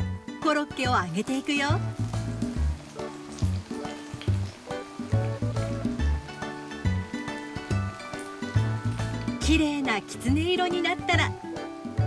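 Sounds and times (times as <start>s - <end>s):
croquettes sizzling in hot oil: 0.0s - 12.0s
background music with bass line: 1.7s - 12.0s.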